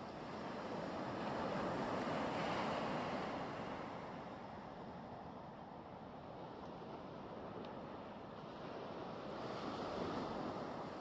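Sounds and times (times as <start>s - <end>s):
wind: 0.0s - 11.0s.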